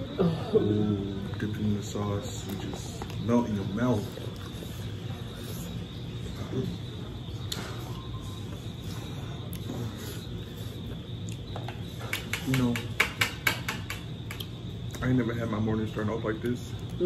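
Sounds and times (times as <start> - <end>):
people chewing food: 0.0 - 17.0
steady low hum: 0.0 - 17.0.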